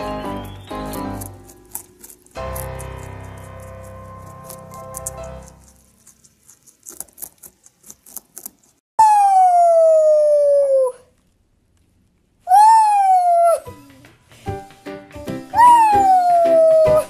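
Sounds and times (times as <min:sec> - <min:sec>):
background music with steady beat: 0:13.7 - 0:17.0.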